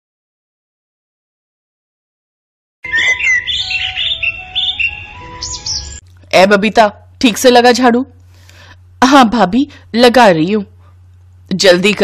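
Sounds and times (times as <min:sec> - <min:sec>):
small birds chirping: 0:02.9 - 0:06.0.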